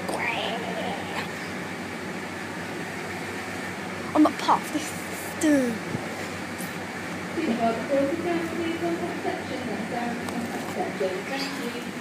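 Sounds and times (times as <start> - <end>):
refrigerator and ventilation hum: 0.0 - 12.0.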